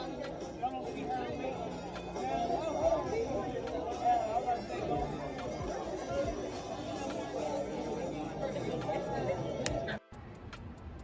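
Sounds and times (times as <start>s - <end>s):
murmur of background chatter: 0.0s - 11.0s.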